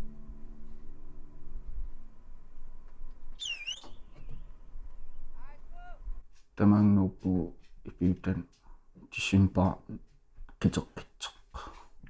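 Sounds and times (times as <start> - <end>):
faint low rumble: 0.0 - 6.3
whistled bird call: 3.4 - 5.4.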